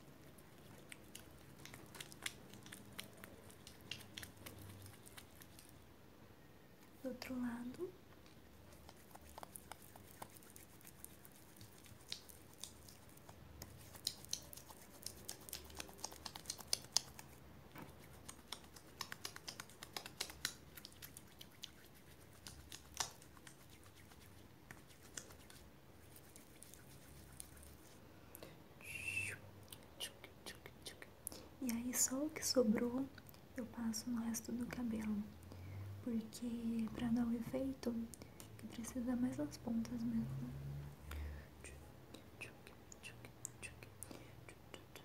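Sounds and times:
hands rubbing cream into hair: 0:08.8 - 0:28.0.

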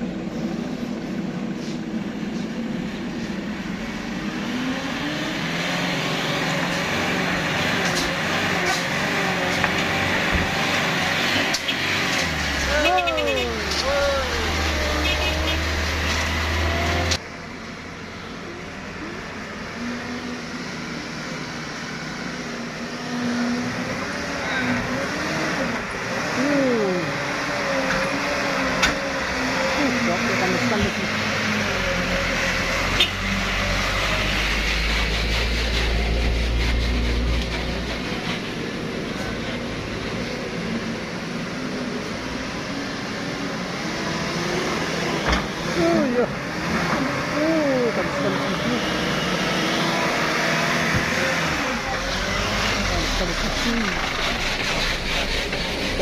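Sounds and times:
truck engines running: 0:00.0 - 0:56.0
people calling out: 0:12.6 - 0:15.5.

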